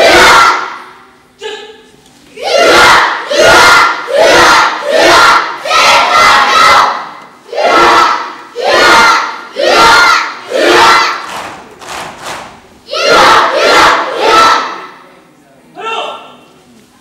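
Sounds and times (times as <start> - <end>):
group shouting in unison: 0.0 - 0.8, 2.4 - 11.2, 12.9 - 14.8.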